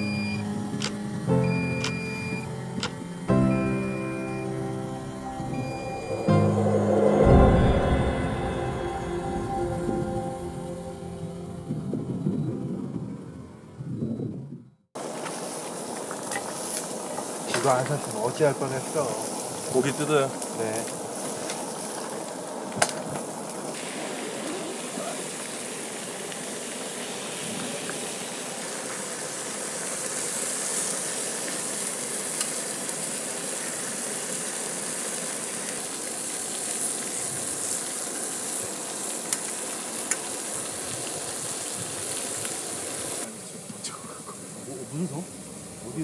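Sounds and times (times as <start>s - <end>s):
food sizzling in a pan: 15.0s - 46.0s.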